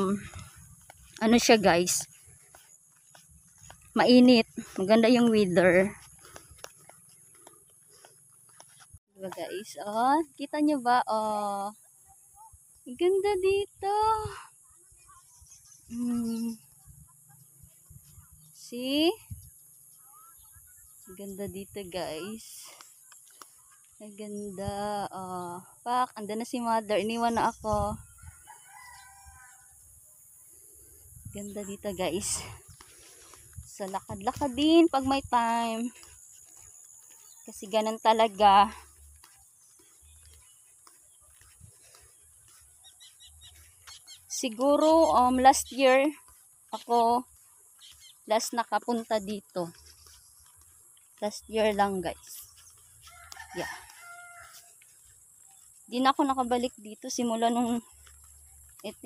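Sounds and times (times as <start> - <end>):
wind rumble on microphone: 27.2 - 29.6, 30.9 - 32.8
rooster crowing: 28.2 - 29.8, 53.0 - 54.7.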